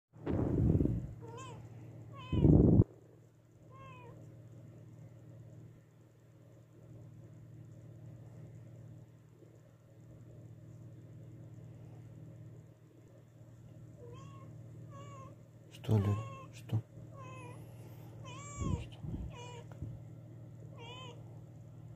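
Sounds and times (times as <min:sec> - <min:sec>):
loud low bumps: 0:00.2 - 0:01.2
steady low hum: 0:00.2 - 0:21.9
cat meowing: 0:01.2 - 0:02.8, 0:18.2 - 0:19.8, 0:20.8 - 0:21.2.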